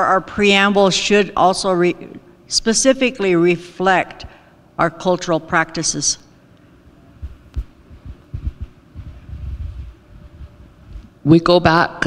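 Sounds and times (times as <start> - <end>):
microphone handling noise: 7.2 - 11.2.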